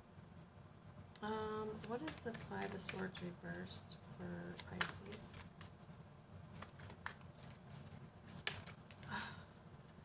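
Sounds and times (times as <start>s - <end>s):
cards being shuffled: 1.7s - 3.4s, 4.4s - 9.2s.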